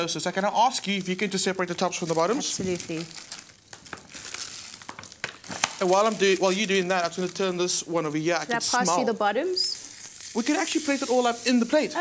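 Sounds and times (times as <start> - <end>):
bread buns rustling: 0.3 - 8.7
person speaking: 5.8 - 9.7.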